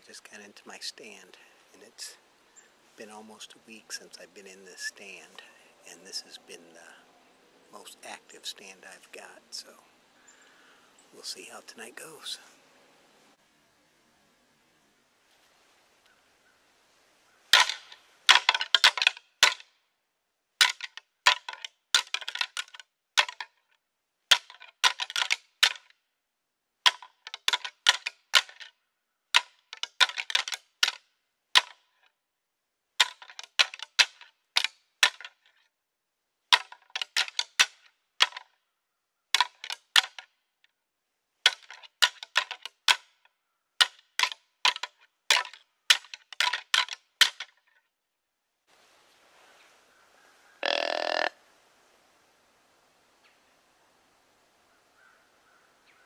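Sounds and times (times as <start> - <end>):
antlers rattling together: 17.5 - 19.6, 20.6 - 23.6, 24.3 - 25.9, 26.9 - 28.7, 29.3 - 31.0, 31.6 - 32.0, 33.0 - 35.6, 36.5 - 38.5, 39.4 - 40.2, 41.4 - 43.2, 43.8 - 47.8.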